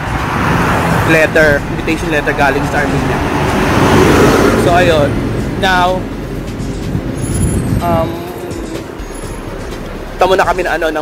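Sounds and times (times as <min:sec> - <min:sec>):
motor vehicle passing: 0:00.0 - 0:11.0.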